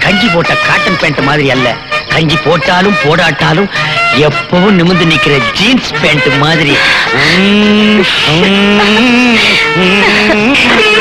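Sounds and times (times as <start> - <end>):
person singing: 6.7 - 11.0.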